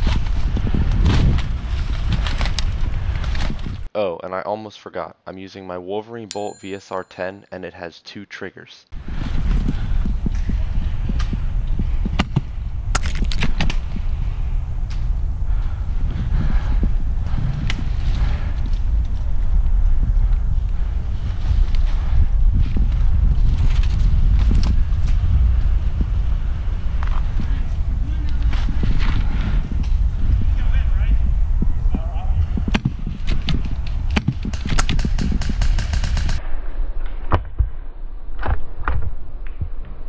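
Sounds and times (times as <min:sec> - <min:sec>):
wind rumbling on microphone: 0:00.0 - 0:03.9, 0:09.0 - 0:40.0.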